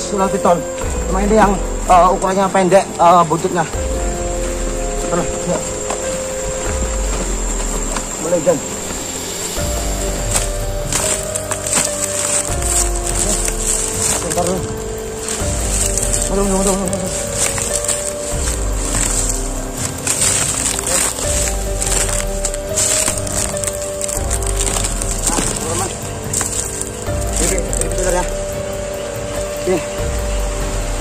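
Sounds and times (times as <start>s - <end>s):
background music with pulsing bass: 0.0s - 31.0s
rain hissing: 0.0s - 31.0s.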